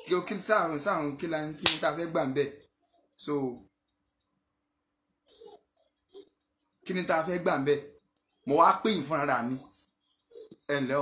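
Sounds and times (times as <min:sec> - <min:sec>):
man speaking: 0:00.0 - 0:02.6, 0:03.2 - 0:03.6, 0:06.9 - 0:07.9, 0:08.5 - 0:09.7, 0:10.7 - 0:11.0
sharp snap: 0:01.6 - 0:02.0.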